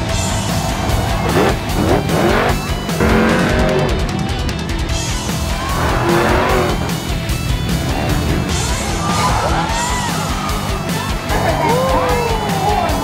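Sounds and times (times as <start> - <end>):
truck engine revving: 0.0 - 11.7
guitar rock music: 0.0 - 13.0.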